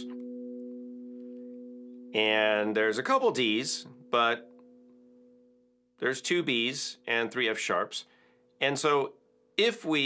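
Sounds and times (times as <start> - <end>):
steel tongue drum note ringing: 0.0 - 5.7.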